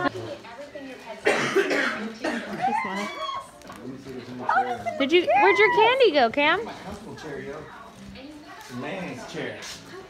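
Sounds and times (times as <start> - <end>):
person coughing: 1.2 - 2.6.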